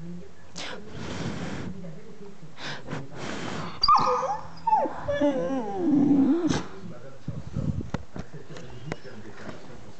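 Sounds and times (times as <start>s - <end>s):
puppy whiny grumbling: 3.8s - 6.7s.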